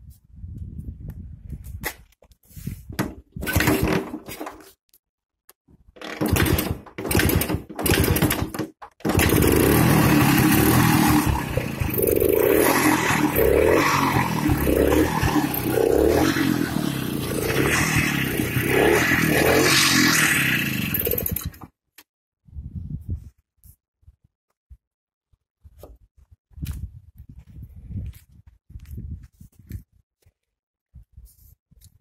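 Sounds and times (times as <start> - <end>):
two-stroke engine revving: 6.0 - 21.7.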